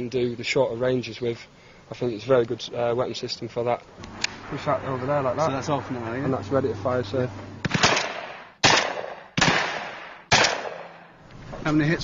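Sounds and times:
shotgun shots with echo: 7.6 - 11.1.

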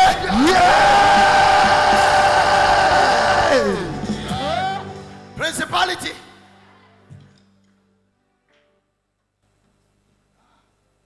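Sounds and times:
noise of large congregation: 0.0 - 8.7.

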